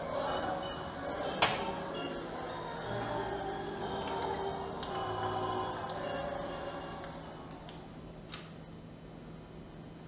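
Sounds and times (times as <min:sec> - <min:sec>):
grand piano chords: 0:00.0 - 0:08.0.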